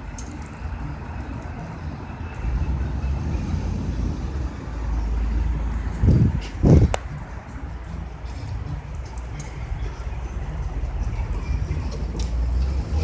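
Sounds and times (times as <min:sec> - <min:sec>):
pickup truck engine rumble: 0:00.0 - 0:13.0.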